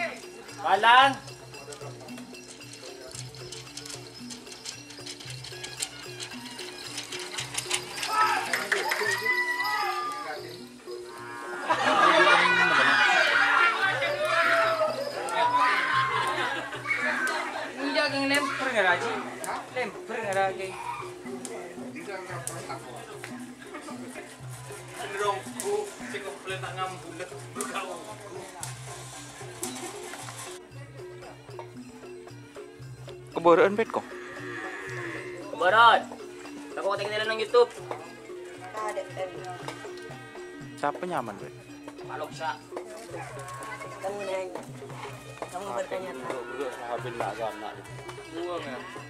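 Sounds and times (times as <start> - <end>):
background music: 0.0 - 49.0
men talking and laughing: 0.0 - 49.0
men shouting together: 8.0 - 10.3, 11.2 - 19.3
low calls of bulls: 10.9 - 11.8, 34.0 - 35.6, 38.5 - 40.9, 44.8 - 49.0.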